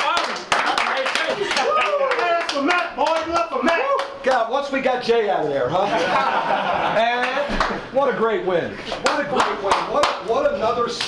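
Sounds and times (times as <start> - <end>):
people clapping in rhythm: 0.0 - 4.5, 7.2 - 7.8, 9.0 - 11.0
people shouting and whooping: 0.9 - 2.8, 3.4 - 4.2.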